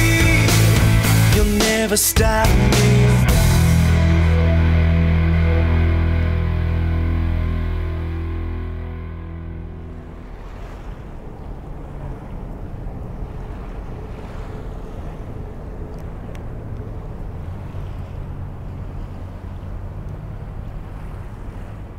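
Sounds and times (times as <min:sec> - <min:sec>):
song: 0:00.0 - 0:10.4
steady wash of noise: 0:03.1 - 0:21.9
wind on microphone: 0:09.9 - 0:21.9.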